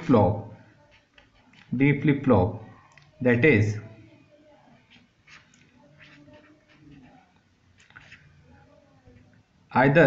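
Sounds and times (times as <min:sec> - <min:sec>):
pen drawing on paper: 0:04.8 - 0:07.4.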